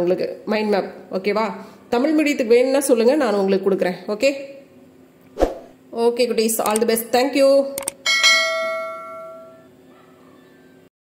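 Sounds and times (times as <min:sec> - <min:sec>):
bright bell ding: 0:08.0 - 0:09.7.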